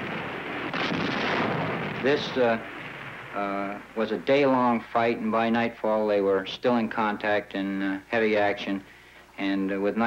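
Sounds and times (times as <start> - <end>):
battle gunfire and blasts: 0.0 - 3.4.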